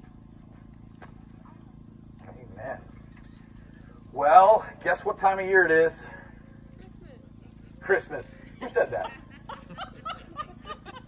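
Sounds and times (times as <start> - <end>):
person chuckling: 8.6 - 11.0.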